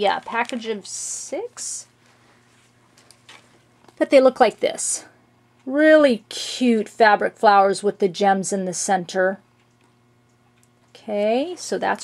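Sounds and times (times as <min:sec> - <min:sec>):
plastic packet rustling: 0:00.0 - 0:00.8
small clicks: 0:09.6 - 0:11.0.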